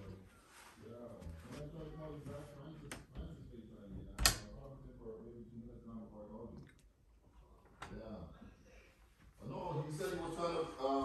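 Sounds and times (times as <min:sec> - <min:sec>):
muffled talk: 0:00.0 - 0:11.0.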